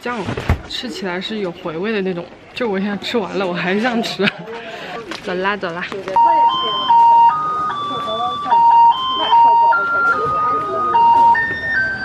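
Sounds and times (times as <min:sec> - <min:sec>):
voices talking: 0:00.0 - 0:12.0
electronic beep jingle: 0:06.2 - 0:12.0.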